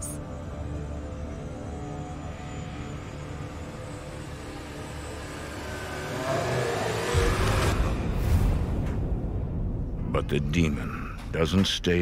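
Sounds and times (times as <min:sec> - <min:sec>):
low ominous drone: 0:00.0 - 0:12.0
deep rumble: 0:07.1 - 0:12.0.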